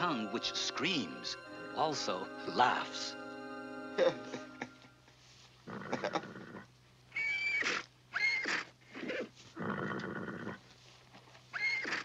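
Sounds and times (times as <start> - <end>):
horse snorting: 5.6 - 6.7, 8.5 - 10.6
horse whinnying: 5.6 - 10.6, 11.5 - 12.0.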